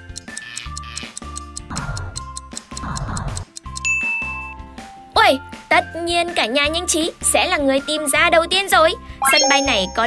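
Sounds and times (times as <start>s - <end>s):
clock-like ticking timer: 0.0s - 4.0s
light background music: 0.0s - 10.0s
high beep: 9.2s - 10.0s.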